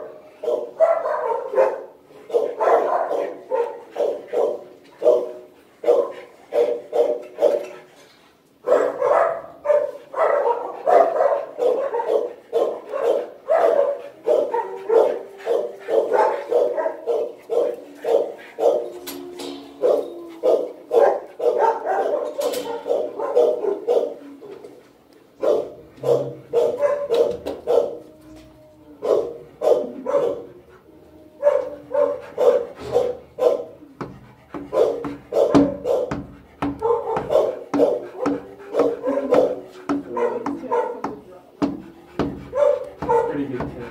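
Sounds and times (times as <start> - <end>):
dogs barking: 0.0 - 7.9, 8.6 - 43.9.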